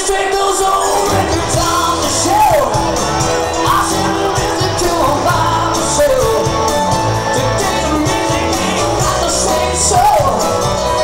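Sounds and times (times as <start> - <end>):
person singing: 0.0 - 11.0
live rock band playing: 0.1 - 11.0.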